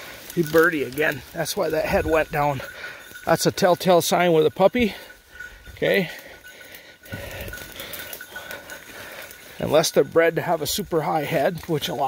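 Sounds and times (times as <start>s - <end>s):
brush and leaves rustling: 0.0s - 12.0s
footsteps through undergrowth: 0.0s - 12.0s.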